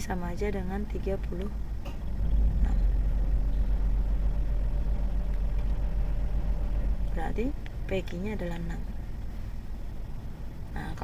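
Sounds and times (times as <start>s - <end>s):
loud low rumble: 1.6s - 11.0s.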